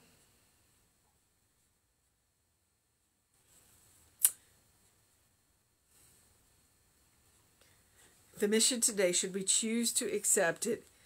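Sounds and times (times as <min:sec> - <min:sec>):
faint hiss: 0:00.0 - 0:11.0
sharp click: 0:04.2 - 0:04.4.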